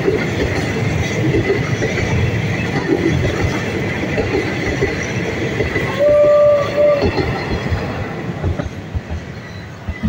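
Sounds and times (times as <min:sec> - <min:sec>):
train wheels rumbling on rails: 0:00.0 - 0:10.0
train horn blasts: 0:05.9 - 0:07.2.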